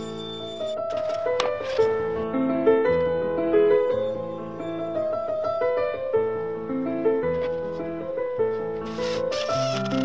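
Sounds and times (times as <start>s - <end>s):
background piano music: 0.0s - 10.0s.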